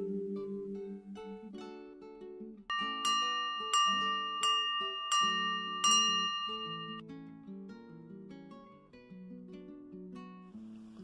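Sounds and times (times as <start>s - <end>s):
acoustic guitar music: 0.0s - 11.0s
bell ringing: 2.7s - 7.0s.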